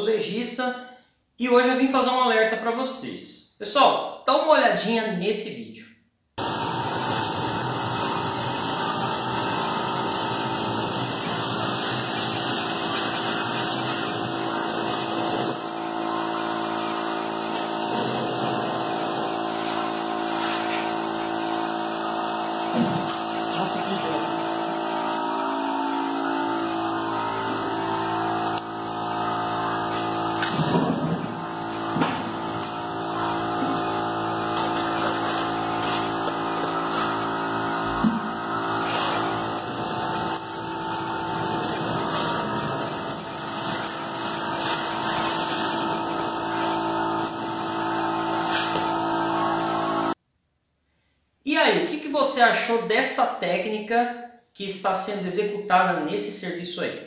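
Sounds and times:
machine motor humming: 0:06.4 - 0:50.2.

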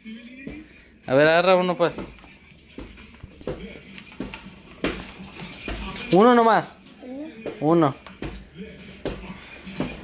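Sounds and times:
child's soft vocal sounds: 0:07.0 - 0:07.4.

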